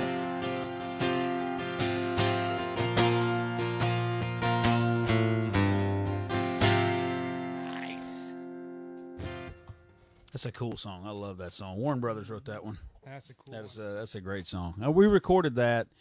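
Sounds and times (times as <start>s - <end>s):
acoustic guitar strumming chords: 0.0s - 10.2s.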